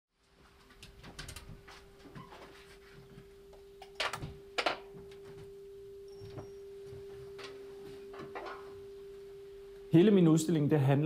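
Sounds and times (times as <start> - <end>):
steady low hum: 0.4 - 11.0.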